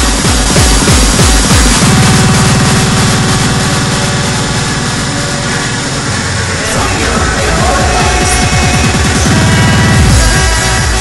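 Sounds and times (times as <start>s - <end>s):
buzzing bass pulse: 0.0s - 11.0s
synth sweep: 0.8s - 10.6s
held synth tones: 1.7s - 10.2s.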